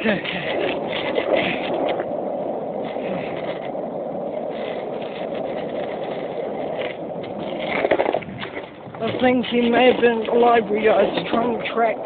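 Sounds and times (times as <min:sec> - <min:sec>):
skate wheels rolling on pavement: 0:00.0 - 0:12.0.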